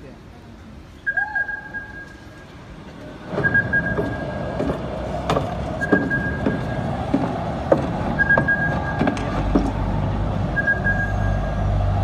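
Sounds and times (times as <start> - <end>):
low rumbling ambience with drone: 1.0 - 12.0.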